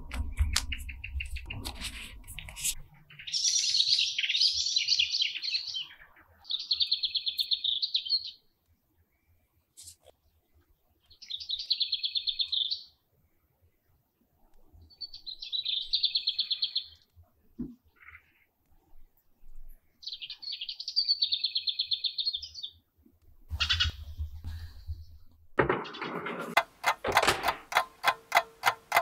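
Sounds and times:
songbird chirping and trilling: 0:00.0 - 0:09.4, 0:10.2 - 0:13.1, 0:14.7 - 0:17.1, 0:19.8 - 0:22.9, 0:23.5 - 0:25.2.

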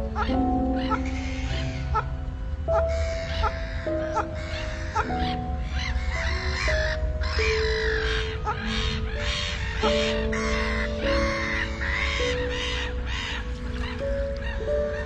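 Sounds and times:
geese honking: 0:00.0 - 0:15.0
slow relaxing music: 0:00.0 - 0:15.0.

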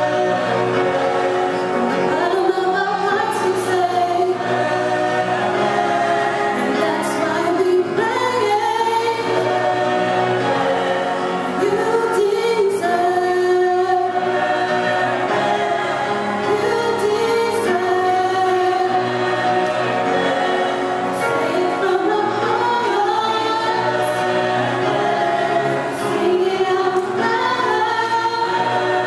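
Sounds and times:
vocal group singing in harmony: 0:00.0 - 0:29.0.

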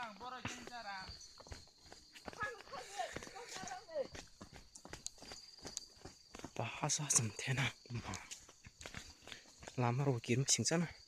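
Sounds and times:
footsteps on dirt path: 0:00.0 - 0:11.0.

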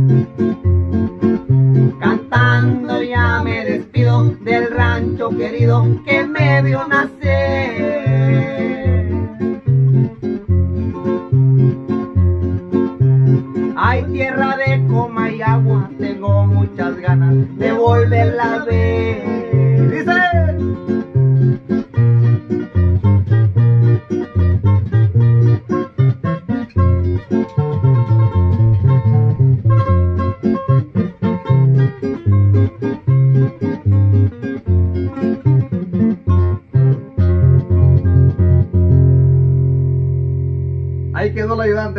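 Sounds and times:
acoustic guitars playing: 0:00.0 - 0:41.9.

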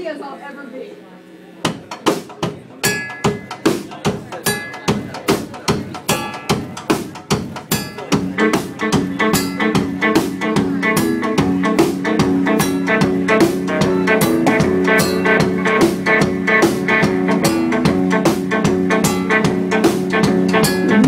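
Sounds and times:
drum kit beating: 0:01.6 - 0:21.0
electric guitar chords: 0:07.7 - 0:21.0.

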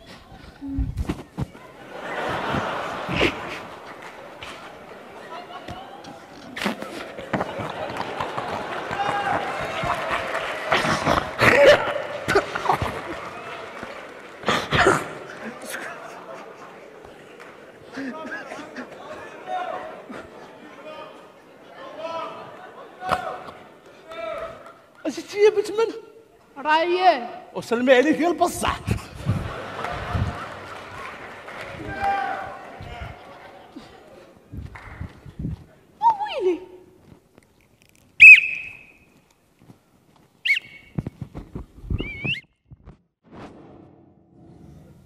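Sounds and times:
actors talking: 0:00.0 - 0:37.0
high-pitched whistled notes: 0:38.2 - 0:39.0.

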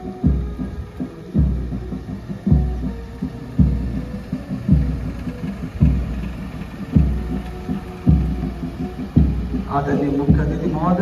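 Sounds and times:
bass drum strokes: 0:00.0 - 0:11.0
parade band playing march: 0:00.0 - 0:11.0.

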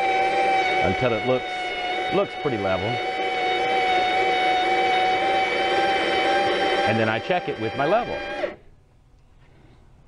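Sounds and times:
man's voice: 0:06.9 - 0:08.3
faint background noise: 0:08.6 - 0:10.0.

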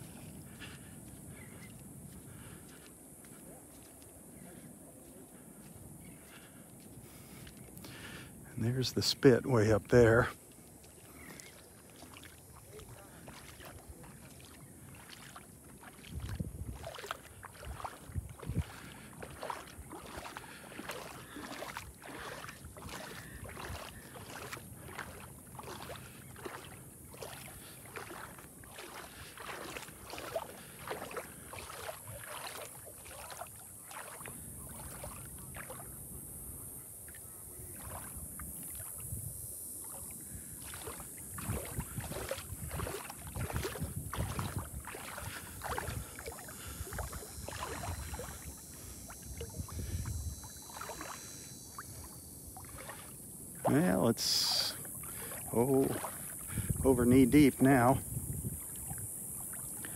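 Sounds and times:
legs sloshing through water: 0:00.0 - 0:59.9.

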